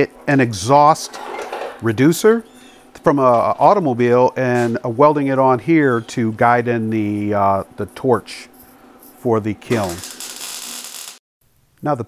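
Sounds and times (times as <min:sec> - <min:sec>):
welder hissing: 0:08.0 - 0:11.2.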